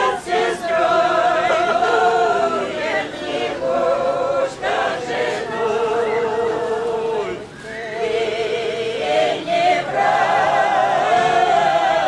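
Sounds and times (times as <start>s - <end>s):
women singing a cappella: 0.0s - 12.0s.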